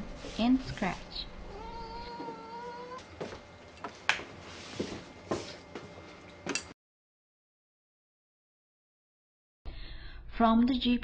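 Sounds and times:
cat meowing: 1.5s - 3.1s.

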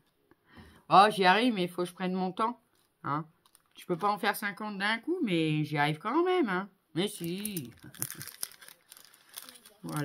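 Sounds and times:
light crackles: 7.2s - 10.0s
paper rustling and crinkling: 7.2s - 10.0s.

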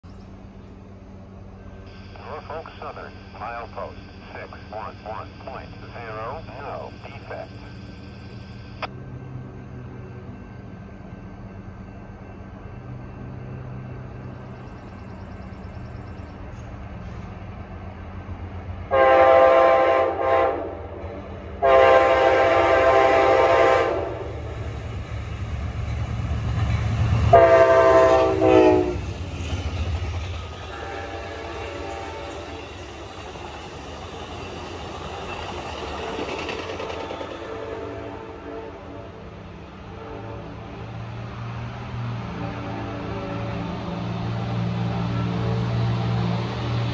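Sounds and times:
diesel locomotive rumble: 0.0s - 46.9s
train horn blasts: 18.9s - 24.6s, 27.2s - 29.1s, 30.5s - 33.0s, 36.8s - 40.8s, 42.2s - 44.2s
train wheel clatter: 24.6s - 37.7s.

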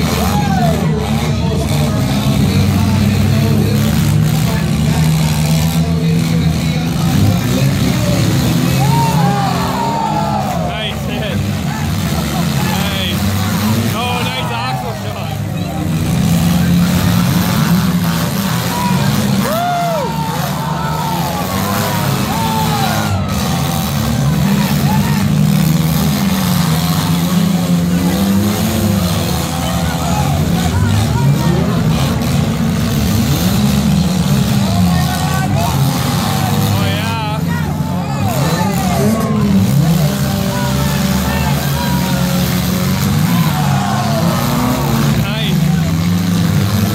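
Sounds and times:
car engines revving: 0.0s - 46.9s.

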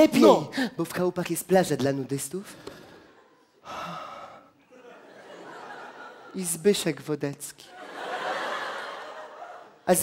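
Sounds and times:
man gasping breathily: 2.6s - 4.6s.

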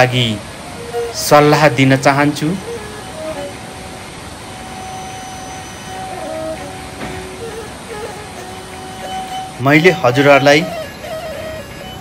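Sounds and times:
flooded river rushing: 0.0s - 12.0s.

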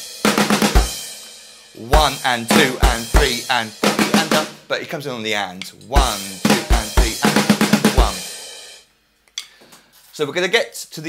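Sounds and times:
electronic drum fill: 1.9s - 4.6s, 6.0s - 8.4s.

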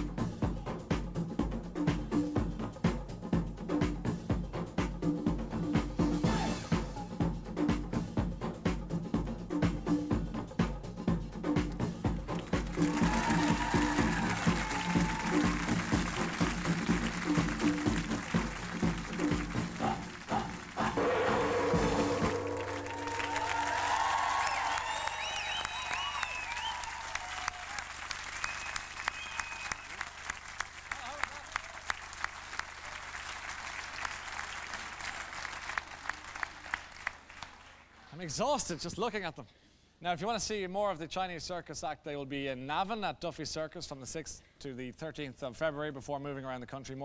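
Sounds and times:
backing music with steady beat: 0.0s - 27.0s
studio audience applauding and cheering: 12.2s - 38.3s.

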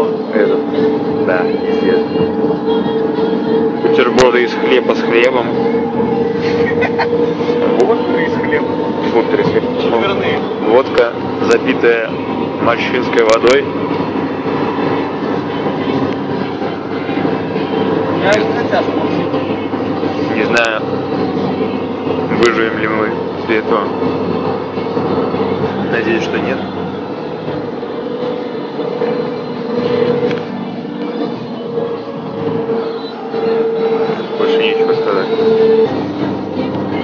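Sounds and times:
vehicle rumbling hum: 0.0s - 37.0s.

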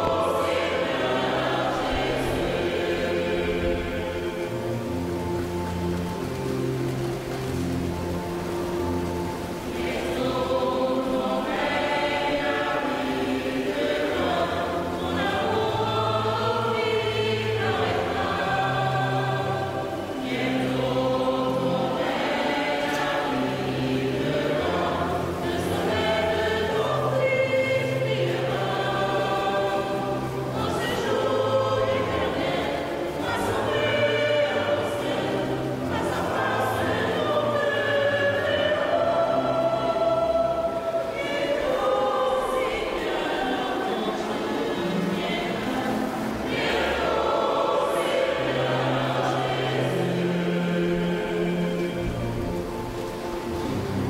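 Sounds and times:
church choir singing a hymn: 0.0s - 54.0s.

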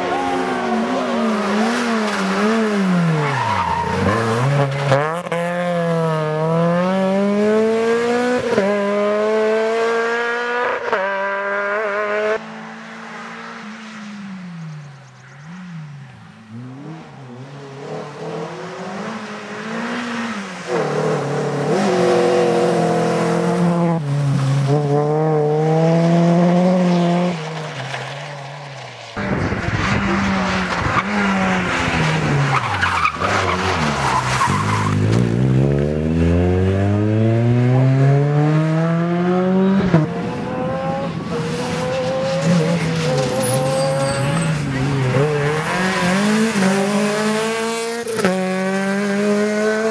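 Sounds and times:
race car engines revving: 0.0s - 49.9s.

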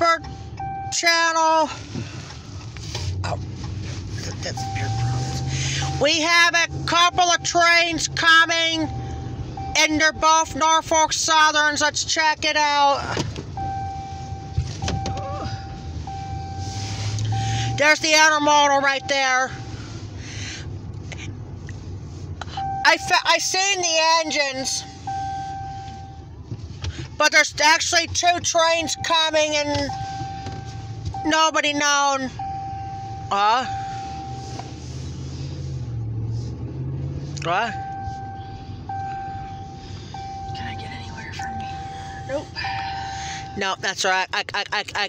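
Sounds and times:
engine and road rumble: 0.0s - 45.0s.

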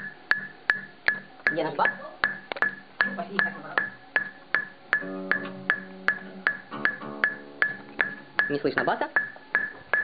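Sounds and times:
metronome click track ticking: 0.0s - 10.0s.

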